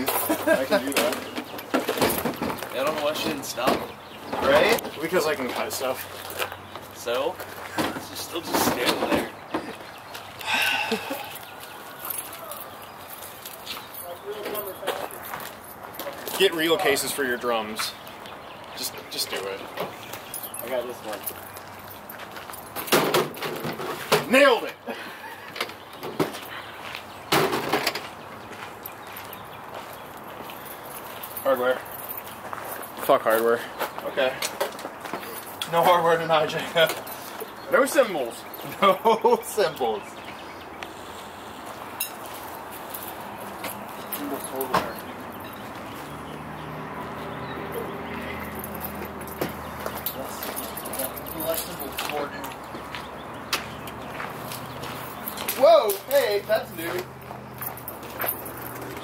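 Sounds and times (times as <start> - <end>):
faint outdoor background: 0.0 - 59.0.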